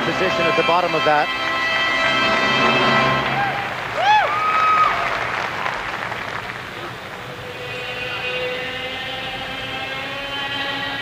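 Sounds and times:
orchestral music sustained chord: 0:00.0 - 0:03.5
crowd applause: 0:01.0 - 0:07.4.

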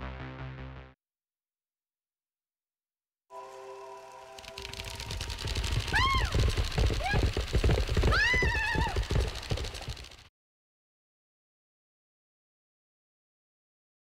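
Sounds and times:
horse hoofbeats galloping: 0:04.4 - 0:10.3.

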